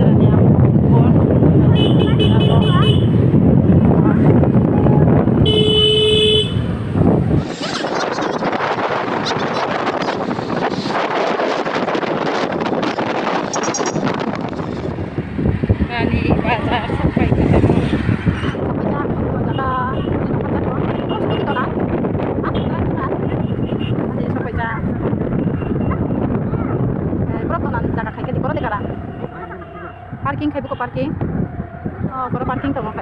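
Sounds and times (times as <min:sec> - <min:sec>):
busy traffic and street noise: 0:00.0 - 0:33.0
wind buffeting microphone: 0:00.0 - 0:33.0
vehicle horn honk: 0:05.4 - 0:06.7.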